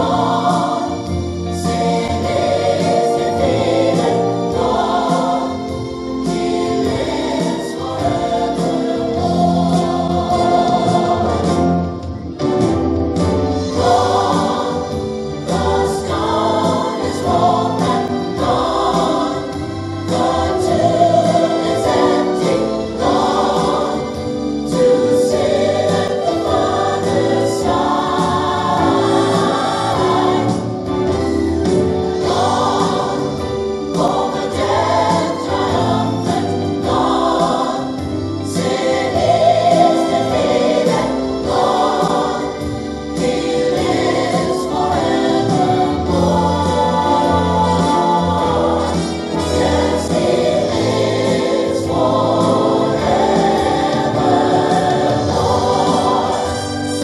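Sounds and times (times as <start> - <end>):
gospel choir singing: 0.0 - 57.0.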